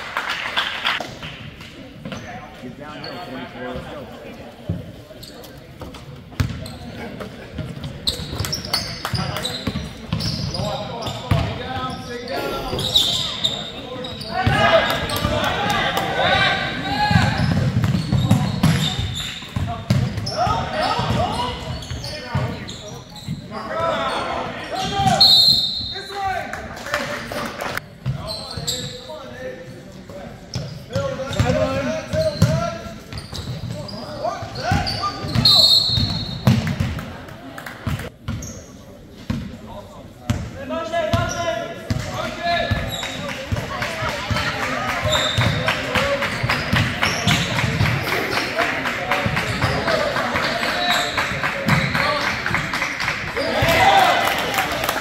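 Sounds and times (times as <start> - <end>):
voices echoing in hall: 0.0 - 55.0.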